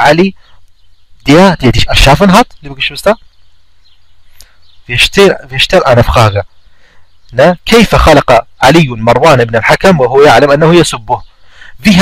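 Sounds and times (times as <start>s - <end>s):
man speaking: 0.0s - 0.4s, 1.2s - 3.2s, 4.9s - 6.4s, 7.3s - 12.0s
faint background hiss: 0.0s - 12.0s.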